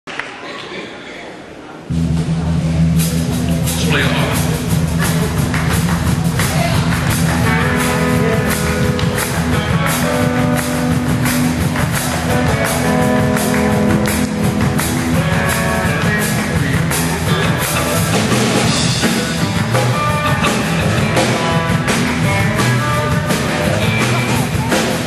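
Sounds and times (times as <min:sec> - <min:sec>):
guitar: 0:01.9 - 0:25.0
drum beat with cymbals: 0:02.9 - 0:25.0.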